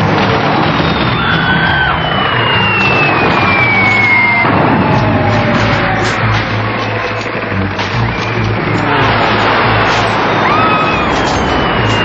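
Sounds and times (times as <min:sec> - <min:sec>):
loud engine rumble: 0:00.0 - 0:12.0
high whistle sliding down: 0:01.2 - 0:06.2.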